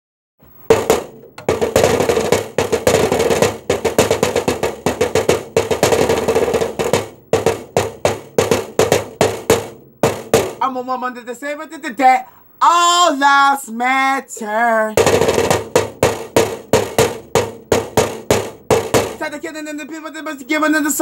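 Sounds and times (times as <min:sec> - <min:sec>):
drumsticks beating hollow object: 0:00.6 - 0:10.7, 0:15.0 - 0:20.0.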